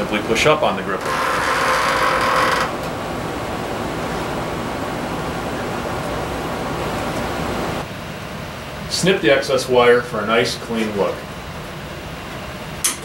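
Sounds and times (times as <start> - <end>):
steel cable rasping through gripper: 1.0 - 2.9
steady even hiss: 2.8 - 11.8.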